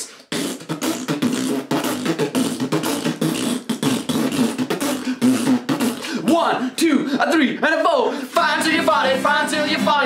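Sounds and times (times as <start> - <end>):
beatboxing mouth percussion: 0.0 - 6.8.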